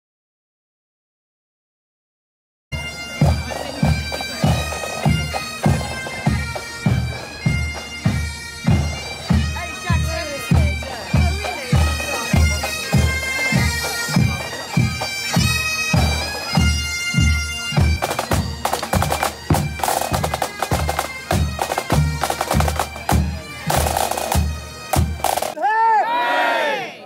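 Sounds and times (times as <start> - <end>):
bagpipes playing a march: 2.7 - 25.6
drum beating steady time: 2.8 - 25.7.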